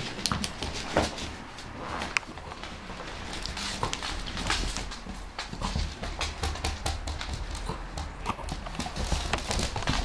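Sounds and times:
puppy claws clicking on wooden floor: 3.3 - 10.0.

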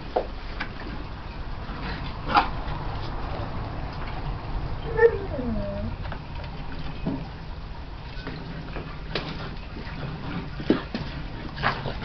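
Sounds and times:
puppy whining cry: 4.8 - 6.0
puppy yelping: 4.8 - 6.0.

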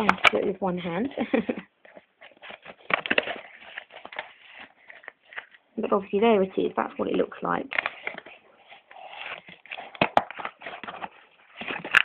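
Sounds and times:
packaging rustling and crinkling: 0.0 - 6.0, 6.9 - 12.0.

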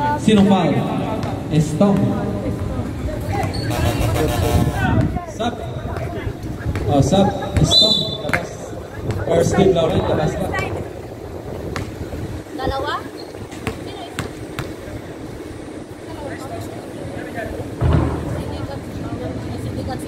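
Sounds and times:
people talking: 0.0 - 11.2, 12.4 - 20.0
basketball bouncing on hard court: 11.7 - 12.0, 13.5 - 14.9
loud low thud: 17.8 - 18.6.

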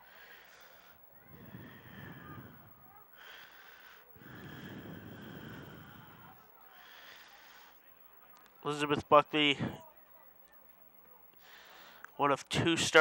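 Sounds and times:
faint distant field sounds: 0.0 - 13.0.

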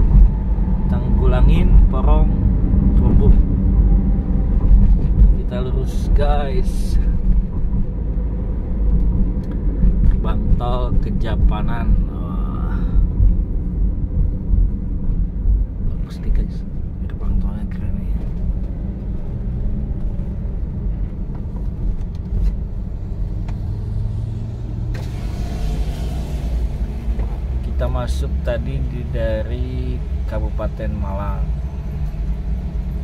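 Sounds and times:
car engine and tyre rumble: 0.0 - 33.0.

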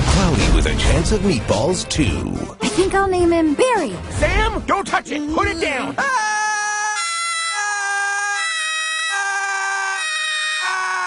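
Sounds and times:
cartoon character high-pitched scream: 6.0 - 11.0.

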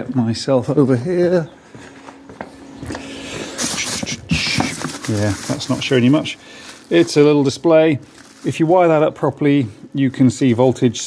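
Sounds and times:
faint steady hum: 0.0 - 11.0
plastic bags rustling: 2.2 - 10.6
hands rummaging plastic parts: 2.8 - 9.0.

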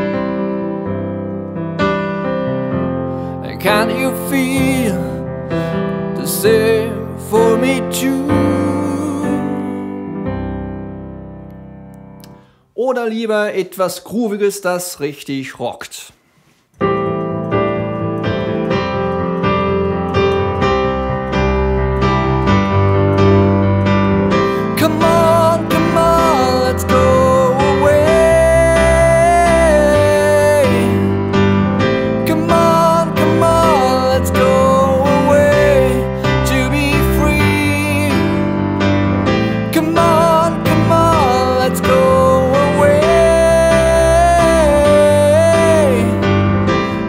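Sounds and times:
piano chords on keyboard: 0.0 - 12.6, 16.8 - 47.0.

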